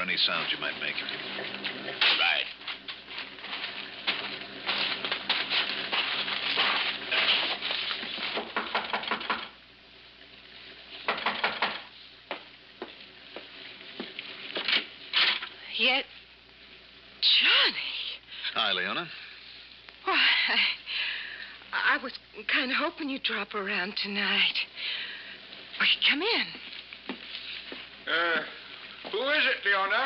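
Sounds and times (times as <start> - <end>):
rapid clicking and rustling: 0.2 - 9.5
knocks: 8.3 - 9.6, 11.1 - 12.9.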